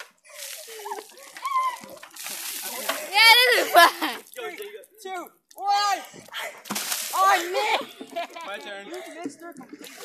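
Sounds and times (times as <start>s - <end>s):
water splashing on pavement: 0.0s - 4.9s, 5.5s - 10.0s.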